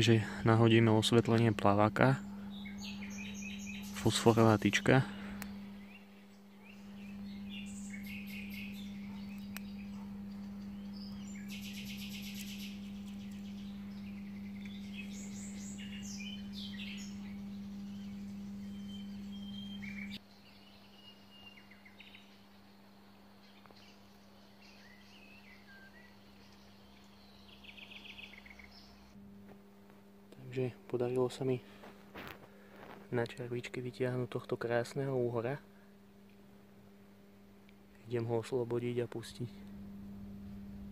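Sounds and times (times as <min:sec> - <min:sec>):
small birds chirping and trilling: 0:00.0 - 0:29.2
steady low hum: 0:00.0 - 0:40.9.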